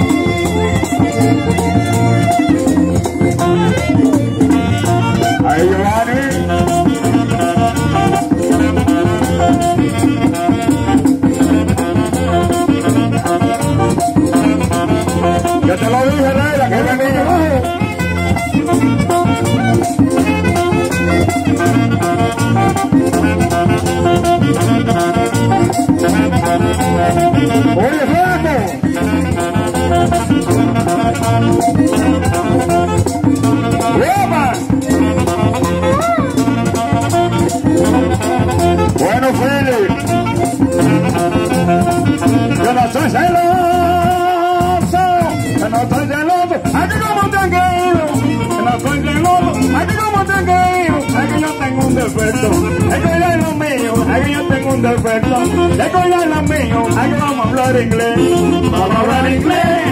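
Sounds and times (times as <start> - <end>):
accordion: 0.0 - 59.9
hand drum: 0.0 - 59.9
saxophone: 0.0 - 59.9
steady percussion: 0.0 - 59.9.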